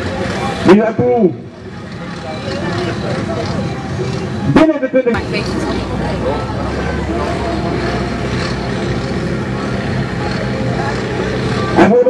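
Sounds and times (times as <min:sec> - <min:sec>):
diesel tractor engine idling: 0:01.5 - 0:11.8.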